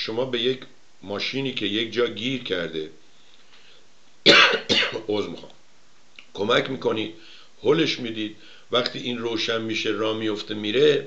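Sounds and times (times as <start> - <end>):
man coughing: 4.3 - 5.1.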